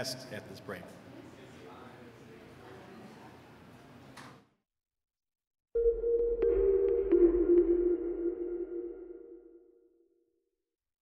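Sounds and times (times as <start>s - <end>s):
synth tone: 5.8s - 10.0s.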